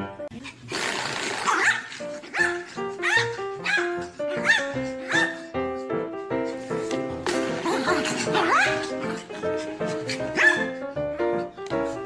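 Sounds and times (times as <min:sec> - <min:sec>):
dog barking: 0:01.5 - 0:05.5, 0:08.2 - 0:09.0, 0:10.2 - 0:10.8
background music: 0:01.5 - 0:12.0.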